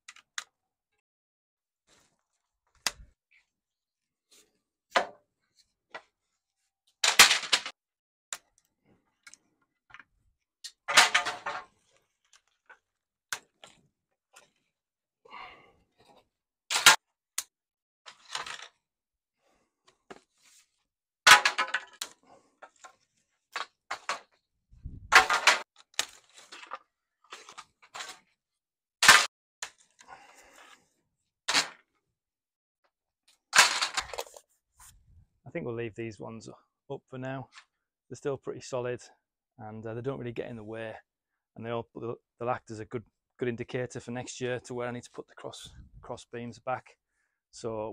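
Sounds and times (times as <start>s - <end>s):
canes crashing onto stone paving: 21.3s - 22.0s, 25.1s - 25.6s.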